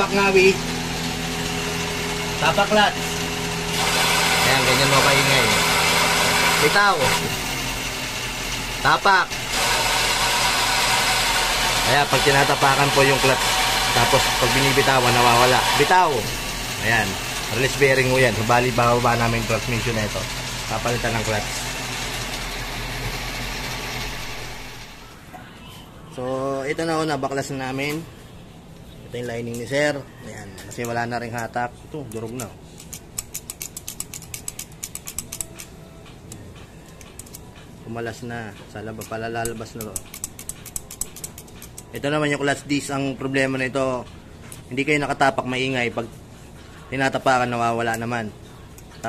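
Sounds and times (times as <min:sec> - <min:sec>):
light mechanical ratchet clicks: 0:30.7 - 0:42.2
clutch release bearing noise: 0:32.1 - 0:37.5, 0:39.0 - 0:42.0.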